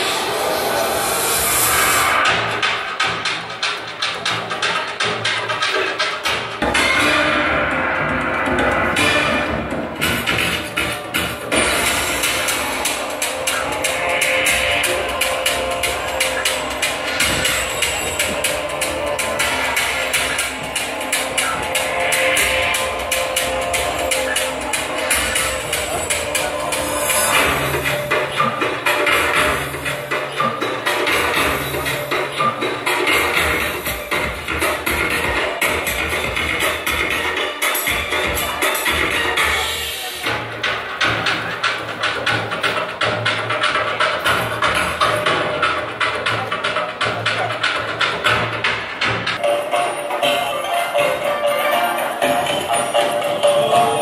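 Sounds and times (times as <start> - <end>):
percussion dance music: 0.0 - 54.0.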